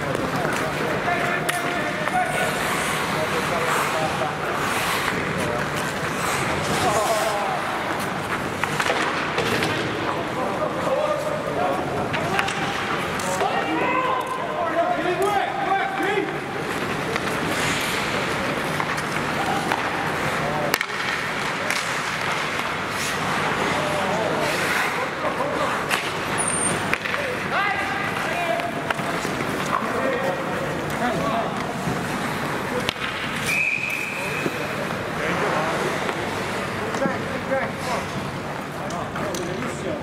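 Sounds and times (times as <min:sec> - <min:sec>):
skates scraping on ice: 0:00.0 - 0:14.0, 0:14.8 - 0:40.0
hockey sticks and puck clacking: 0:00.0 - 0:40.0
stick hitting puck: 0:08.5 - 0:10.2, 0:16.0 - 0:23.3, 0:26.9 - 0:30.3.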